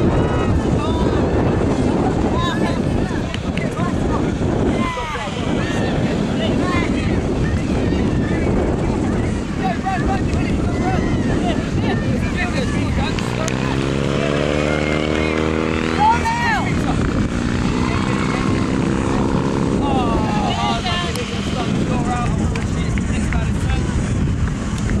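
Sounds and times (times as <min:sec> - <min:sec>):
voices calling out: 0:00.0 - 0:23.7
loud shout: 0:09.6 - 0:12.0
engine drone: 0:12.8 - 0:25.0.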